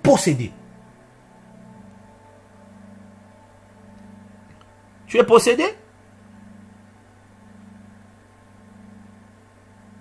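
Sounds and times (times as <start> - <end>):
low electrical hum with hiss: 0.0 - 10.0.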